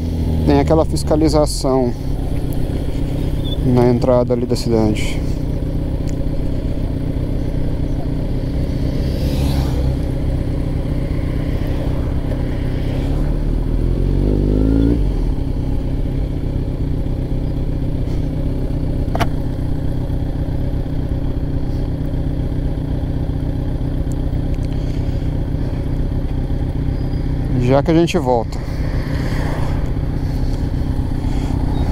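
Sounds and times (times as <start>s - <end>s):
motorcycle engine running: 0.0s - 31.9s.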